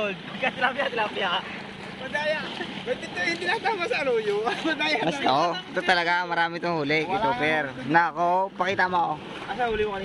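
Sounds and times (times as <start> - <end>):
choppy water: 0.0 - 10.0
men talking: 0.0 - 10.0.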